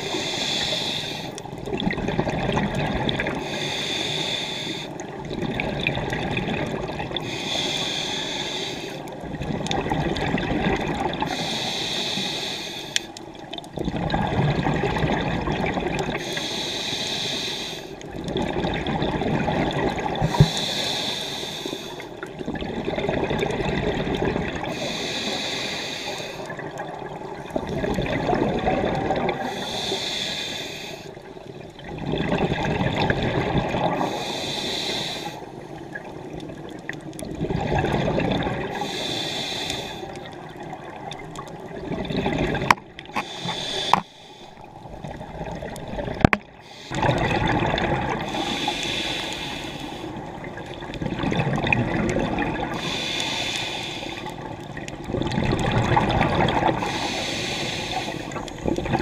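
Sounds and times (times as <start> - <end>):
exhaled bubbles gurgling: 0.0 - 59.0
regulator inhalation hiss: 0.1 - 1.4, 3.4 - 4.9, 7.2 - 9.0, 11.3 - 13.1, 16.2 - 18.0, 20.3 - 22.0, 24.7 - 26.5, 29.4 - 31.2, 34.1 - 35.5, 38.7 - 40.2, 43.2 - 44.7, 48.2 - 50.3, 52.8 - 54.5, 56.8 - 58.5.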